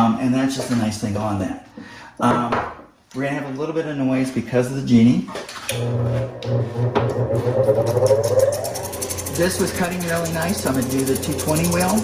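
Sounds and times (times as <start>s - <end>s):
grinder motor hum: 5.8s - 12.0s
grinding wheel whine: 5.8s - 12.0s.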